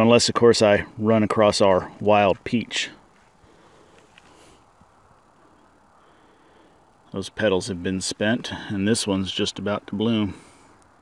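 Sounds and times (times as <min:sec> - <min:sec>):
faint click: 0:10.7 - 0:11.0.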